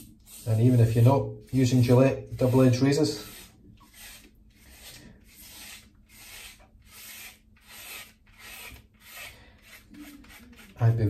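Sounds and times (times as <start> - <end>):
razor scraping stubble: 0.4 - 11.0.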